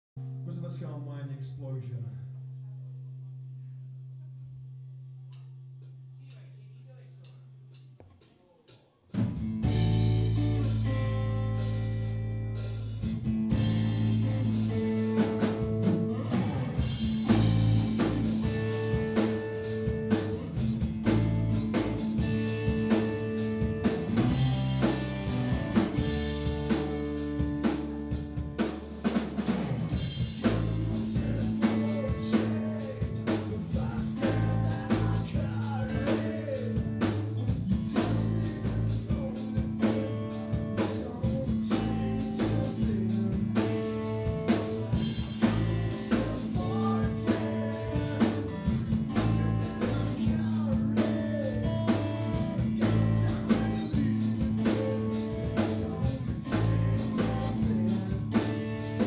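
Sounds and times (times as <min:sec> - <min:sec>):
blues-rock band playing: 0:09.2 - 0:59.0.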